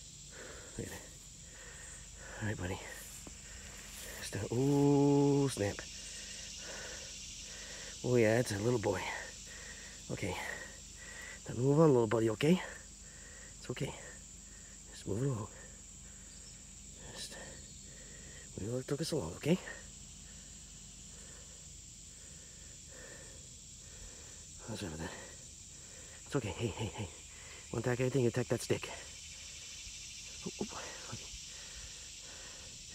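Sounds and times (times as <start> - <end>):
faint outdoor background noise: 0.0 - 32.9
high-pitched insect chorus: 0.0 - 32.9.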